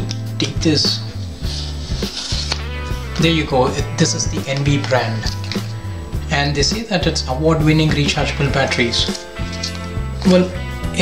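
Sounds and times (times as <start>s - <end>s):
background music with bass line: 0.0s - 11.0s
sticker peeled off plastic: 1.5s - 3.4s, 9.1s - 9.9s.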